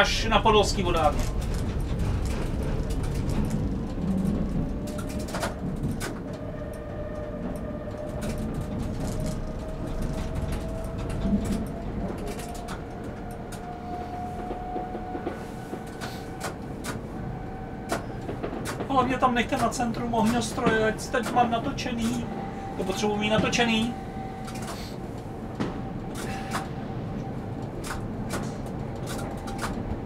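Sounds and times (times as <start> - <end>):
tram rolling rumble: 0.0 - 30.0.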